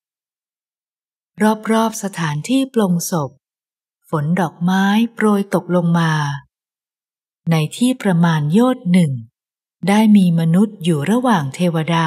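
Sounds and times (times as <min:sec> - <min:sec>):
narrator reading: 0:01.3 - 0:06.5, 0:07.4 - 0:12.0.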